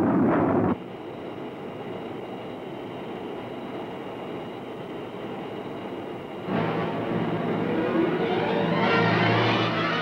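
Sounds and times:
faint high whine: 0.0 - 10.0
jet cockpit rushing hum: 0.0 - 10.0.

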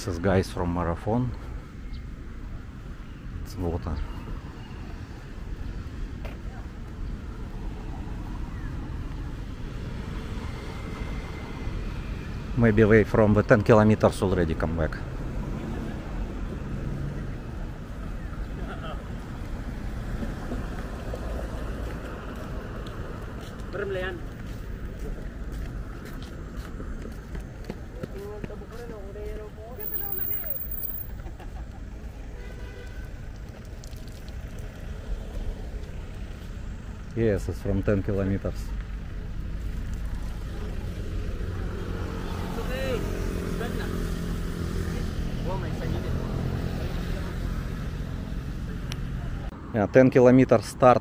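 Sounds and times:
road traffic rumble: 0.0 - 51.0
footsteps on pavement: 6.1 - 7.0, 19.2 - 31.1, 35.2 - 37.1.

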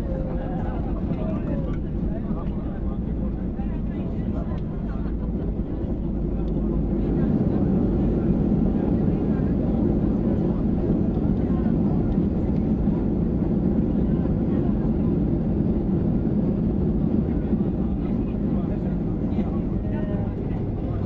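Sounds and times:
airplane cabin roar: 0.0 - 21.0
faint voices: 0.0 - 21.0.

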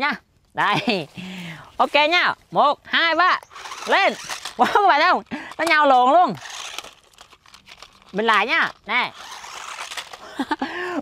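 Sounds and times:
toy car electric motor whir: 3.4 - 10.7.

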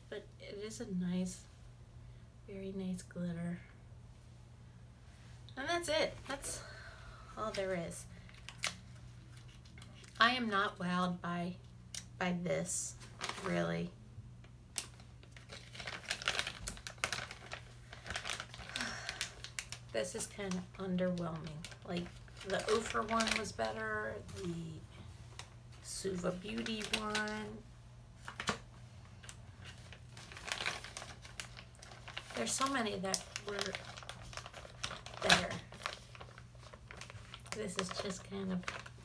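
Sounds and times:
packaging crinkling and rustling: 7.5 - 10.2, 12.9 - 13.8, 14.8 - 24.6, 25.2 - 27.6, 28.2 - 39.0.

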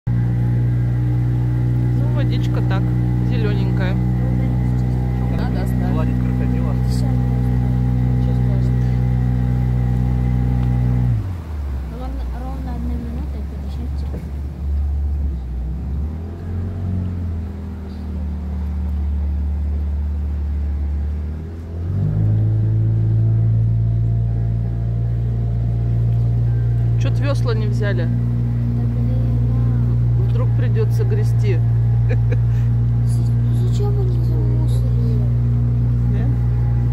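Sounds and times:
boat motor droning: 0.0 - 36.9.

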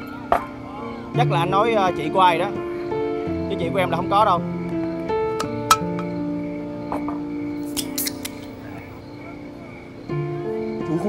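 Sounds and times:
soft background music: 0.0 - 11.0
aluminium can crinkling: 7.7 - 8.5.

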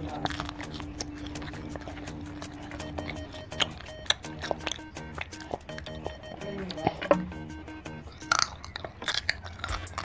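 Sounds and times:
crunching and chewing snack food: 0.0 - 10.0.

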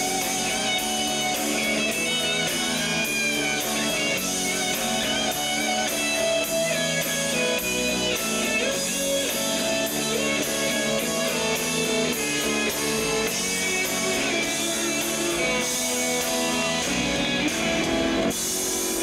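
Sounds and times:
electric guitar: 0.0 - 19.0
rock band playing instrumental: 0.0 - 19.0.

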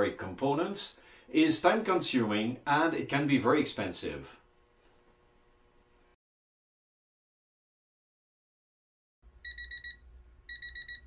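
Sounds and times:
high electronic beeps: 9.4 - 11.0.

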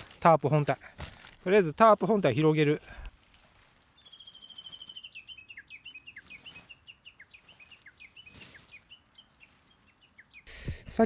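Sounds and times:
songbird chirping: 1.4 - 11.0
tarp fabric rustling: 3.1 - 5.2, 6.0 - 10.4.

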